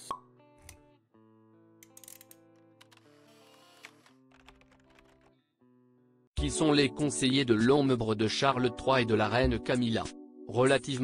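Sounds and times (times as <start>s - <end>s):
held background music notes: 6.4s - 11.0s.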